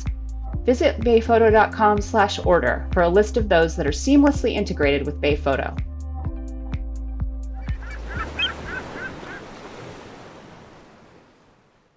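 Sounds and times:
background music: 0.0s - 8.9s
short bird calls: 7.7s - 9.6s
ocean surf: 7.8s - 11.9s.

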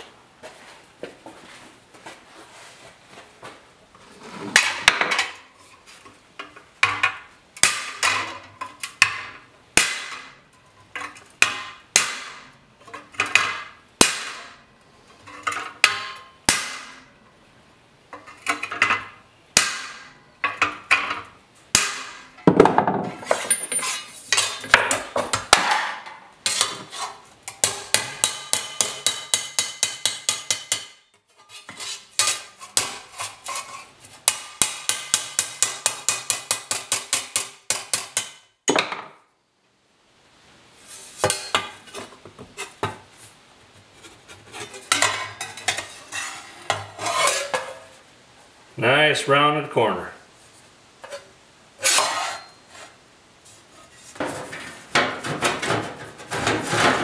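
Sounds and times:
hammer striking sheet steel: 6.8s - 8.4s, 9.0s - 10.4s, 11.4s - 12.5s, 13.3s - 14.6s, 15.8s - 17.1s, 19.6s - 20.2s, 21.7s - 22.4s, 27.5s - 31.0s, 34.2s - 38.5s.

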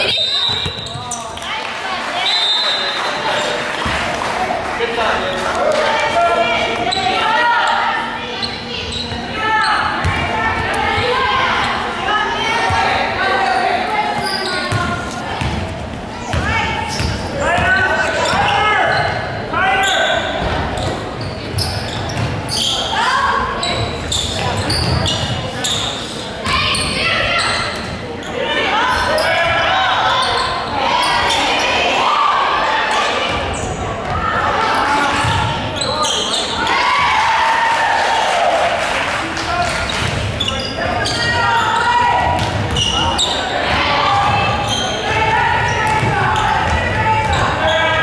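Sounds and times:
people calling out in echoing hall: 0.0s - 48.0s.

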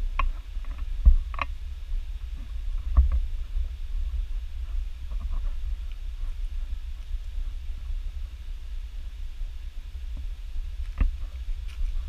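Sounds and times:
low wind rumble: 0.0s - 12.0s
microphone handling noise: 0.0s - 12.0s.

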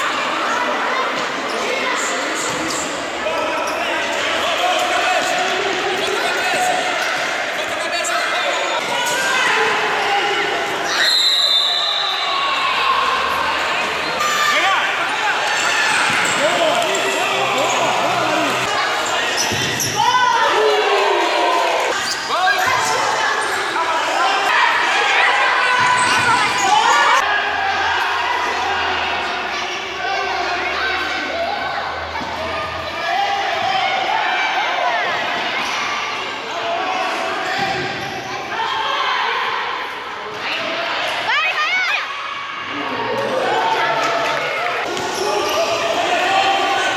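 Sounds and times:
voices calling out: 0.0s - 39.7s
shoes squeaking on floor: 19.0s - 20.0s.

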